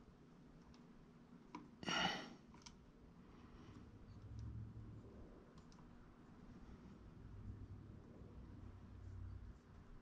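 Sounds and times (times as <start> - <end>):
faint clicks: 5.5 - 5.9.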